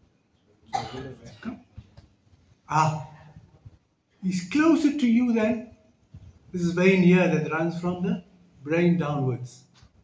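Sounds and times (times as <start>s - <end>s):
person coughing: 0.7s - 1.6s.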